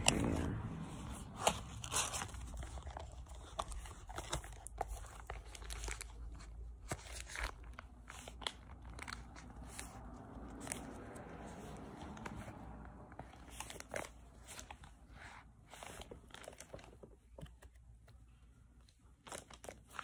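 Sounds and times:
paper crinkling and rustling: 0.0s - 20.0s.

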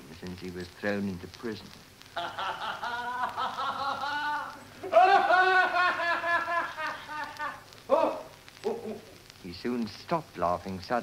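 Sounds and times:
man laughing heartily: 2.2s - 8.2s.

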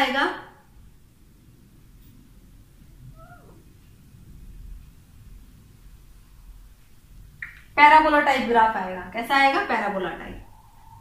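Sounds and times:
cat meowing: 3.1s - 3.7s.

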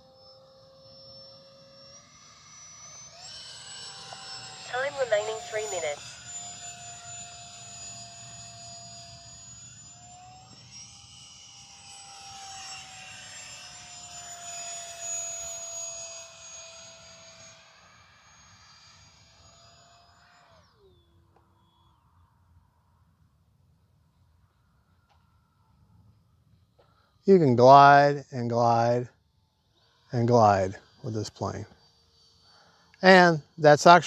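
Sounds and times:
electric jet fan whining overhead: 0.0s - 34.0s.

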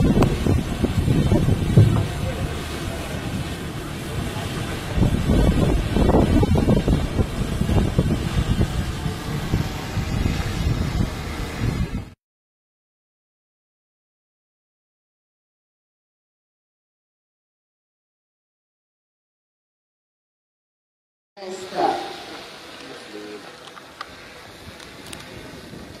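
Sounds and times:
wind buffeting microphone: 0.0s - 12.2s, 24.1s - 26.0s.

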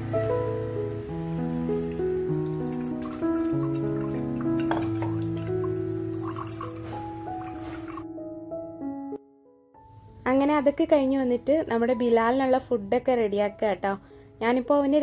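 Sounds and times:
held keyboard notes music: 0.0s - 15.0s
liquid dripping into steel bowl: 1.8s - 8.0s.

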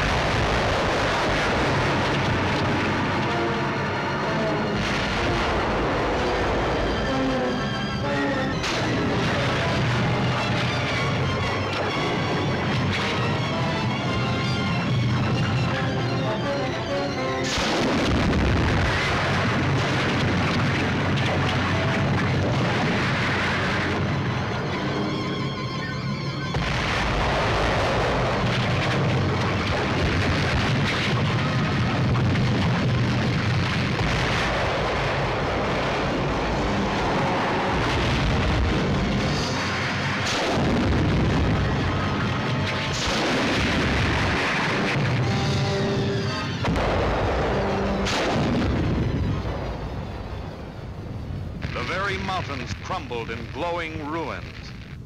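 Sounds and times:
volcanic eruption rumble: 0.0s - 13.6s, 17.5s - 24.6s, 26.6s - 55.0s
dramatic film score: 0.0s - 55.0s.

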